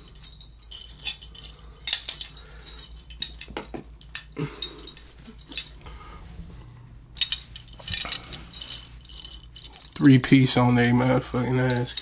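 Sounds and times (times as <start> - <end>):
metal chains clinking: 0.0 - 5.8, 7.2 - 12.0.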